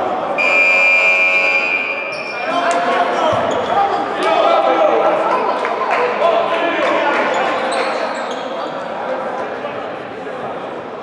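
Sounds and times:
players' voices: 0.0s - 11.0s
scoreboard buzzer tone: 0.4s - 2.1s.

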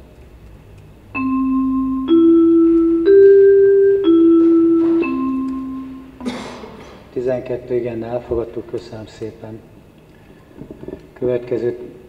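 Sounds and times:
electronic bell-like chime: 1.2s - 6.2s.

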